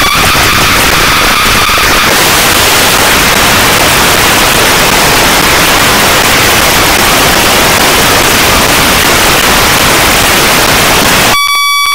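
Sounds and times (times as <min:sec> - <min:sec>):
whistling synth tone: 0:00.0 - 0:02.2, 0:11.4 - 0:11.9
harsh dense synth noise: 0:00.0 - 0:11.9.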